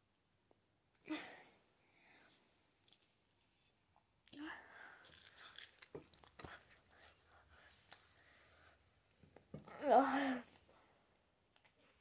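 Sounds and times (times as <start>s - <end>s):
child chewing: 2.1s - 3.6s, 4.2s - 8.1s.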